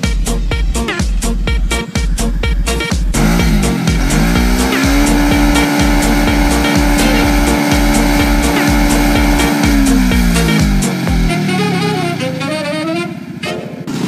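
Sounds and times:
music with steady beat: 0.0 - 13.9
quad engine revving: 3.1 - 14.0.

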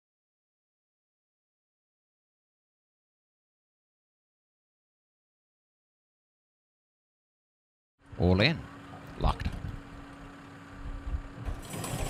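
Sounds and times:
starting gate clattering open: 11.4 - 12.0.

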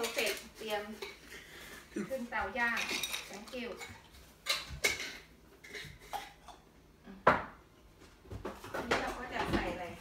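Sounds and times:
kitchen utensils being handled: 0.0 - 1.3, 2.5 - 6.6.

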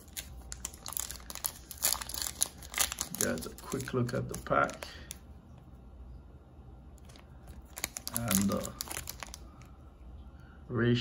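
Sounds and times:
foil wrapper crinkling: 0.0 - 5.2, 7.0 - 9.7.

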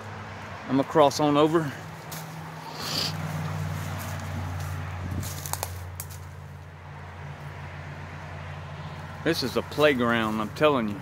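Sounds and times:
footsteps crunching through dry leaves: 1.2 - 6.6, 8.9 - 11.0
twigs snapping: 3.3 - 6.7.

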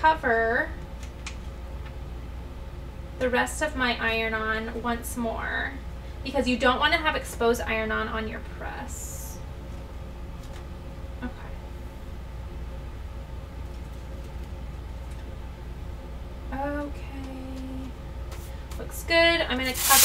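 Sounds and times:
person speaking: 19.5 - 20.0
paper handling: 19.6 - 20.0.

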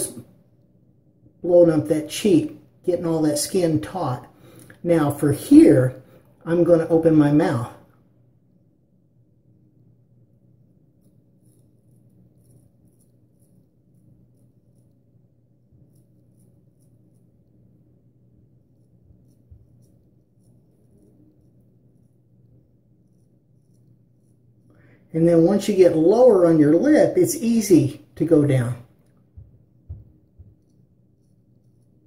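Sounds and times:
low steady hum: 0.0 - 32.0
razor scraping stubble: 10.9 - 17.8, 18.5 - 24.7, 30.4 - 32.0.

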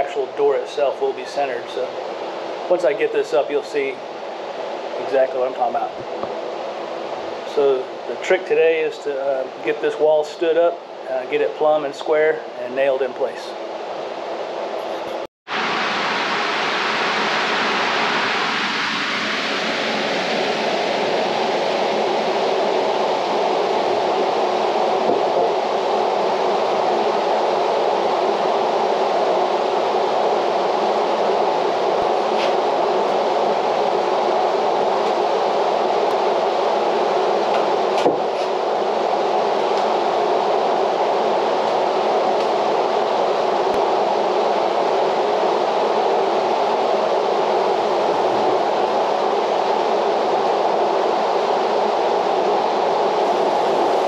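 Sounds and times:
drum fan whooshing: 14.4 - 54.0.

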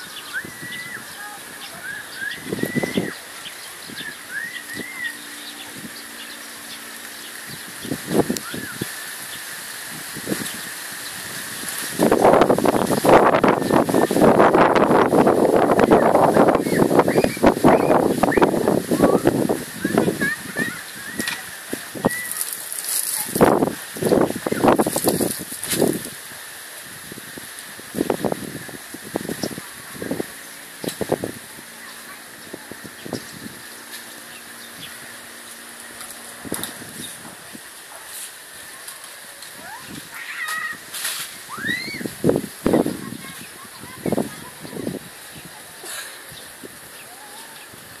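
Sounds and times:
people talking: 0.0 - 8.9, 12.2 - 25.4, 28.4 - 47.9
rising bird chirps: 0.0 - 9.6, 16.5 - 21.4.

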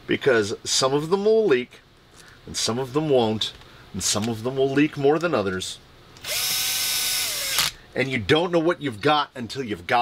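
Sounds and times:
cordless drill whirring: 6.2 - 7.8.

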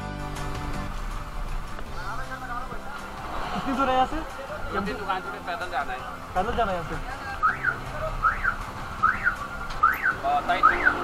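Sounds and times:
alarm-like gliding chirp: 7.4 - 11.0.

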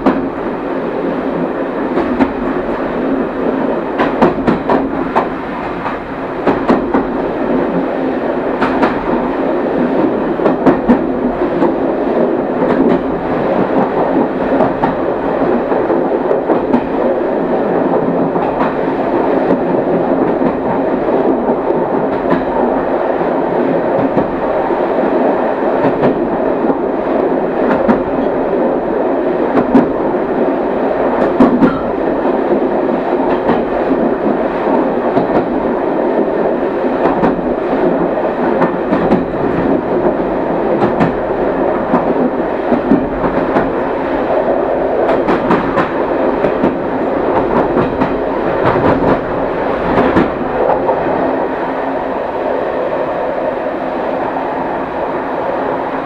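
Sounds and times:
train wheels rumbling on rails: 0.0 - 56.0
wheels clicking over rail joints: 31.2 - 32.0.

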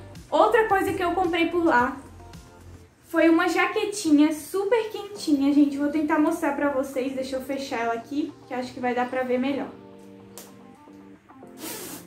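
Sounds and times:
soft background music: 0.0 - 12.0
jacket zipper being pulled: 11.4 - 12.0.

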